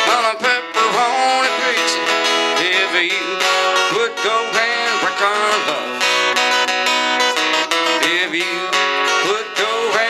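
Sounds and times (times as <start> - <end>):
man singing: 0.0 - 6.3, 7.8 - 10.0
strummed acoustic guitar: 0.0 - 10.0.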